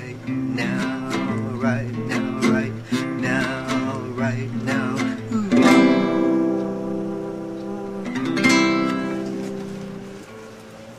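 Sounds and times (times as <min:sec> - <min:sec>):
guitar chords strummed: 0:00.0 - 0:10.9.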